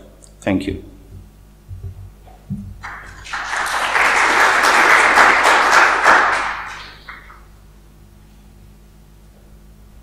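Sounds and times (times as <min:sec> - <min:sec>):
audience applauding: 0:02.8 - 0:07.5.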